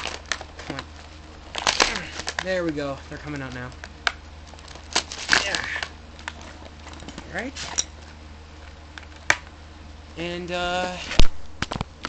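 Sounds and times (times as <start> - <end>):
plastic packaging crinkling: 0.0 - 7.0
plastic packaging clicks: 1.5 - 6.4.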